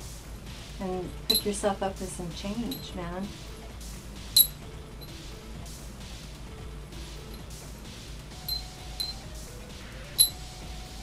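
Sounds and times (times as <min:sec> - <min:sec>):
metal beads clicking on chain: 0:01.2 - 0:01.5, 0:02.6 - 0:03.0, 0:04.4 - 0:04.6, 0:08.4 - 0:09.2.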